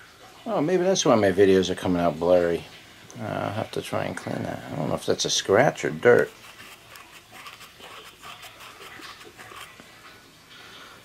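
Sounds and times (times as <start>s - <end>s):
cloth wiping camera lens: 6.1s - 9.9s.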